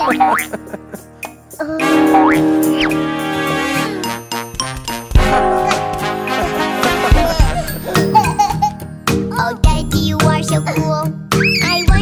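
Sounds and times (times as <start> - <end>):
sliding-pitch cartoon sound effects: 1.8 - 4.2
cartoon music sustained chord: 1.8 - 8.6.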